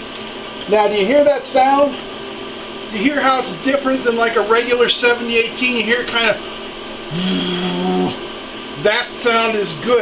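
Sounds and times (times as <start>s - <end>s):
man's drawn-out uhh: 7.1s - 8.2s.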